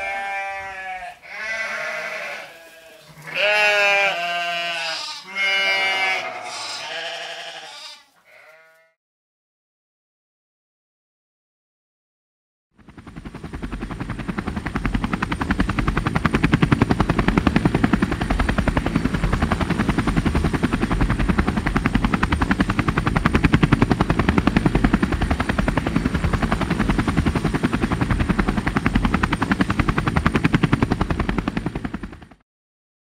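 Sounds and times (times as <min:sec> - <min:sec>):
rapid mechanical pulsing: 0:12.8 - 0:32.4.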